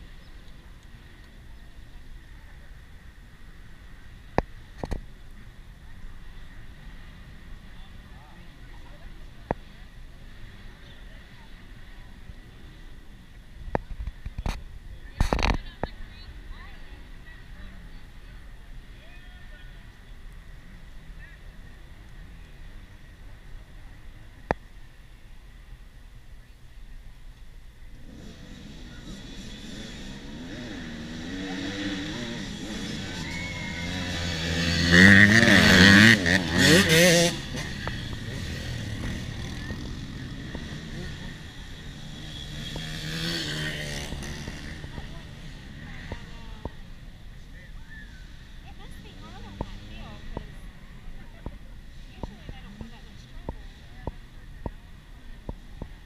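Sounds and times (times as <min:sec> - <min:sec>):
dirt bike engines revving: 0:00.0 - 0:26.0, 0:27.7 - 0:56.0.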